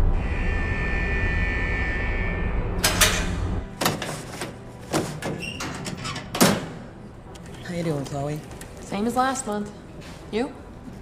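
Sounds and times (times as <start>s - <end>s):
high sustained tone: 0.0s - 3.6s
low rumbling drone: 0.0s - 3.7s.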